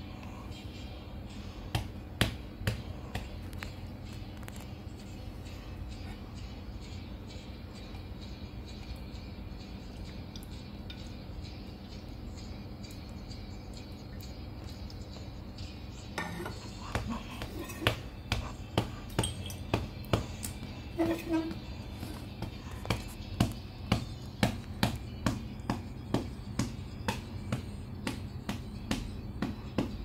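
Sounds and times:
low background hum: 0.0 - 30.0.

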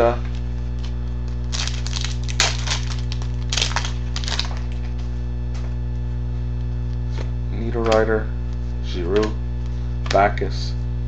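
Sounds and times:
steady electrical hum: 0.0 - 11.0
trading cards rustling and snapping: 0.8 - 5.0, 10.0 - 10.4.

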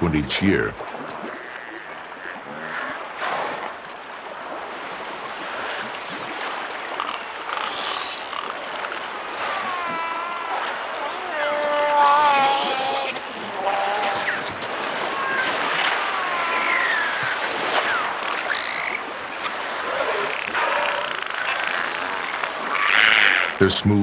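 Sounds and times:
whale whistles and squeals: 7.0 - 23.6
whale clicks: 12.7 - 23.4.

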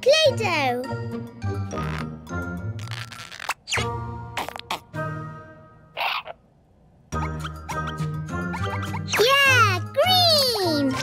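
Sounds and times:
bouncy children's music: 0.0 - 2.8, 7.1 - 11.0
cartoon sound effect: 2.8 - 5.0.

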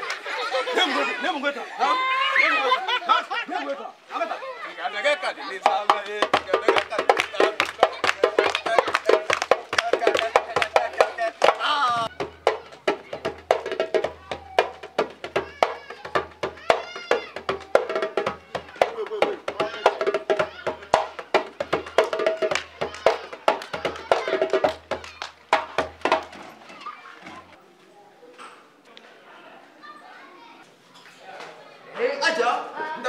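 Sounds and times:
children's voices: 0.0 - 3.3, 4.2 - 5.6, 7.3 - 9.3, 11.6 - 25.5, 26.3 - 33.0
faint background chatter: 0.0 - 33.0
djembe hand drum strikes: 5.6 - 26.4.

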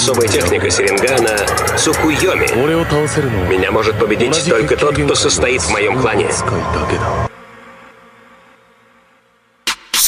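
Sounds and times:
loud sound cutting off: 0.0 - 7.3
faint buzzing drone with tones: 0.0 - 10.0.

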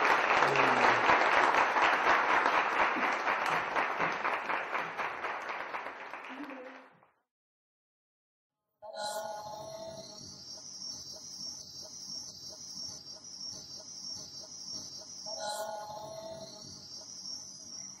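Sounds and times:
high shrill chirring: 8.9 - 18.0.

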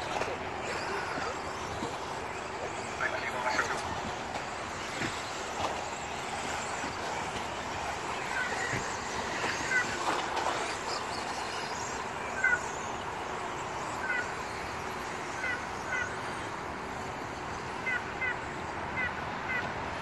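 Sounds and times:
rc car motor whines: 0.0 - 17.7
rc cars mechanical noise: 0.0 - 20.0.

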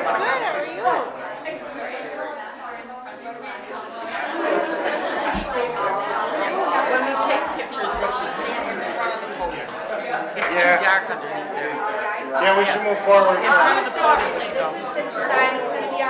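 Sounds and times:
people chatting: 0.0 - 16.0.

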